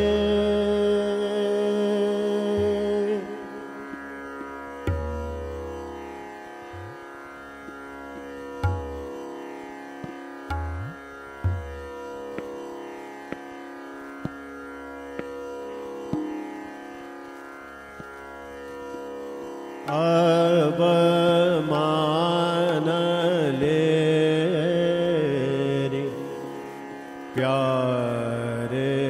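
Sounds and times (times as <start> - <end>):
person singing: 0.0 - 3.7
tabla strokes: 3.9 - 21.4.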